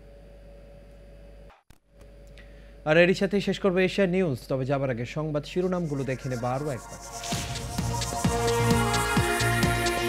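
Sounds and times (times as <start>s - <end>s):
electronic theme music: 5.6s - 10.0s.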